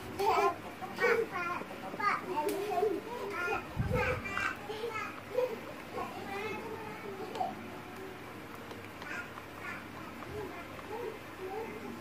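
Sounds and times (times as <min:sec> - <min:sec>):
children chattering and calling: 0:00.0 - 0:12.0.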